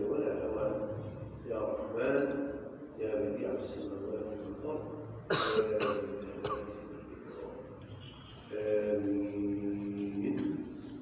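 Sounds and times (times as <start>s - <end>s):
man coughing: 5.3s - 6.9s.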